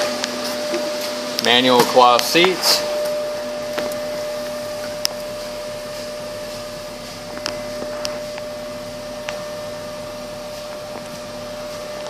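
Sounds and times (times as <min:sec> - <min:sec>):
car engine hum from cabin: 0:01.4 - 0:12.0.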